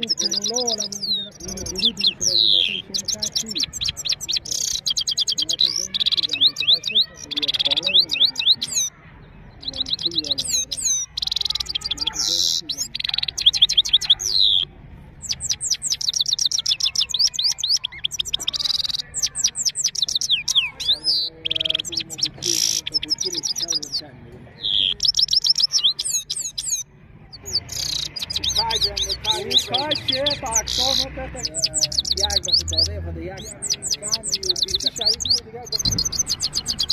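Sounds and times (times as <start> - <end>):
finch singing twittering notes: 0.0 - 36.9.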